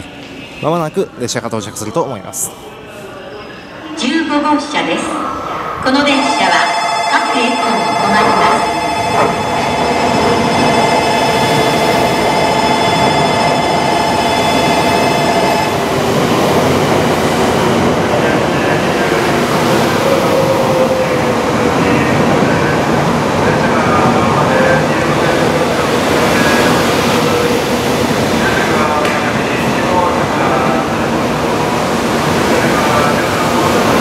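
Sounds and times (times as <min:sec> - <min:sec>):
train rolling past: 0:02.6 - 0:34.0
steady multi-pitch tone: 0:05.7 - 0:22.1.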